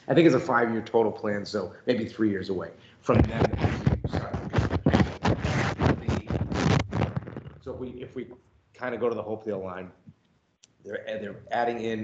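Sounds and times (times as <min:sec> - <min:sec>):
people talking: 0:00.0 - 0:06.8, 0:07.6 - 0:09.9, 0:10.9 - 0:12.0.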